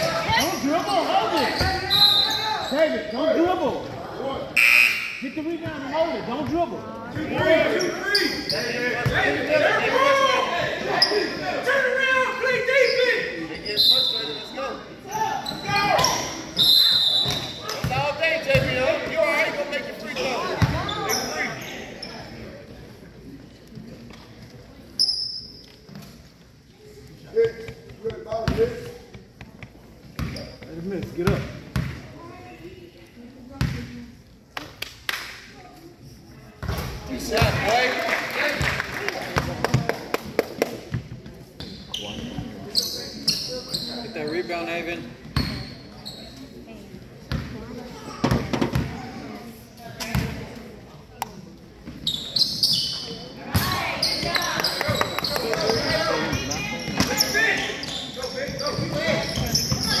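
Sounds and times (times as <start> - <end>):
spectators chattering: 0.0 - 34.7, 35.3 - 60.0.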